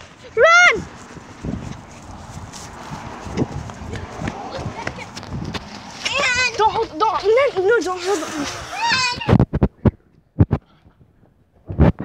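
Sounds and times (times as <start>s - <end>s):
running footsteps: 0.0s - 10.6s
child shouting: 0.2s - 0.9s, 3.9s - 5.2s, 6.0s - 9.4s.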